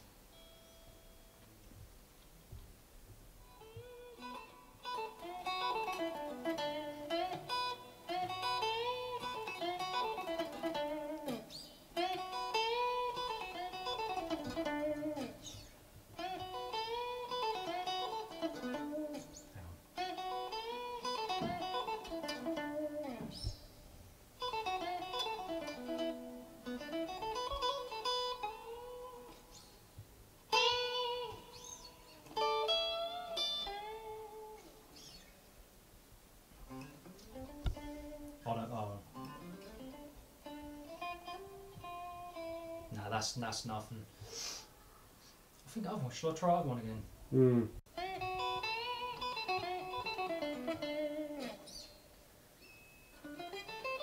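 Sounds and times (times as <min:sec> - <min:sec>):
electric guitar picked notes: 0:00.0 - 0:01.9, 0:03.4 - 0:35.5, 0:36.6 - 0:44.0, 0:47.4 - 0:54.0.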